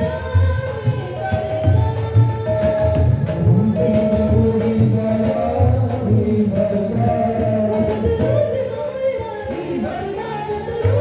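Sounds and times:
instrumental accompaniment: 0.0s - 11.0s
man singing into microphone: 3.4s - 8.4s.

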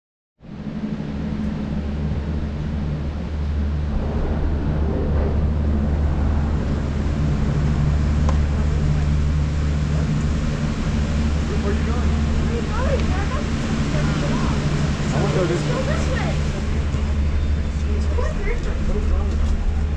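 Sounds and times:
low machinery hum: 0.4s - 19.9s
faint voices: 8.0s - 19.9s.

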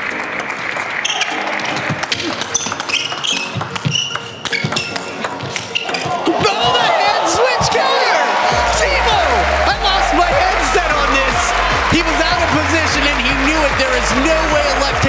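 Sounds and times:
table tennis ball clicking: 0.1s - 6.0s
crowd cheering and shouting: 5.8s - 15.0s.

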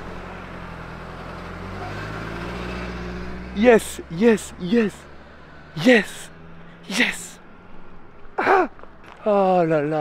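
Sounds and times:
car engine idling: 0.0s - 9.9s.

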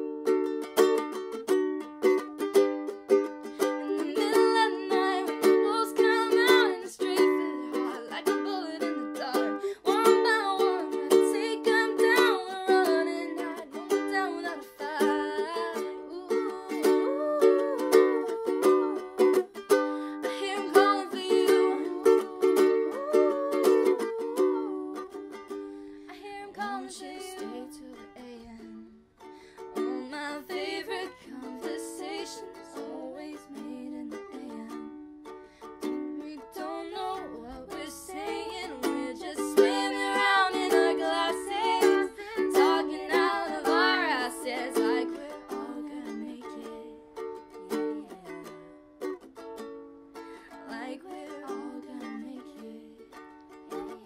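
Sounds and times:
ukulele strumming chords: 0.0s - 54.0s
woman singing: 3.2s - 25.5s, 26.1s - 29.0s, 29.6s - 35.0s, 36.2s - 49.1s, 50.4s - 54.0s.

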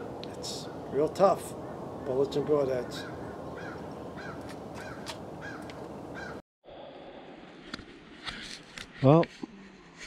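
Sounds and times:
bird calling: 0.0s - 6.4s.

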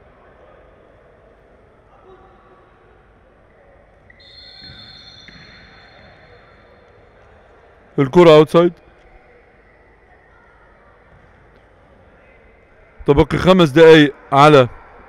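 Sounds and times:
distant players' voices: 1.5s - 15.0s
ball play on wooden court: 4.1s - 6.6s, 11.0s - 12.4s
faint high steady tone: 4.1s - 7.0s.

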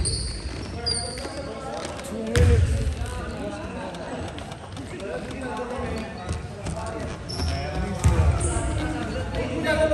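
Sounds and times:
sneaker squeaks: 0.0s - 2.5s, 5.8s - 9.9s
voices in echoing gym: 0.0s - 9.9s.

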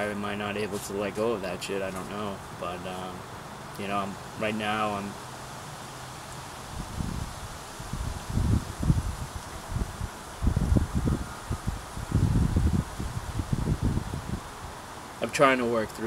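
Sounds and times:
wind buffeting microphone: 6.6s - 14.9s.

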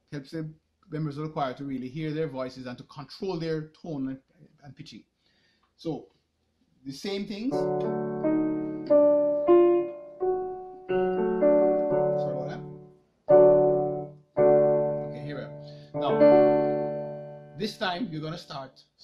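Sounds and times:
electronic keyboard piano chords: 7.5s - 18.4s.

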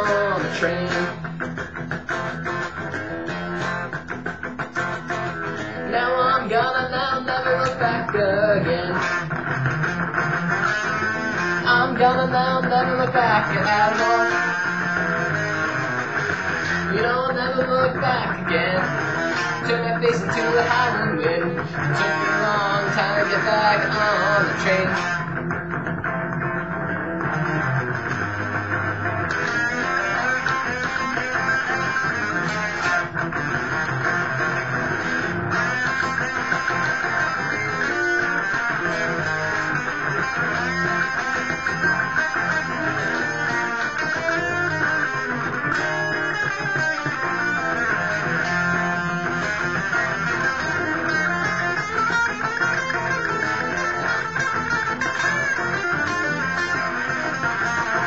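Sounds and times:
electric guitar rock blues playing: 0.0s - 58.0s.

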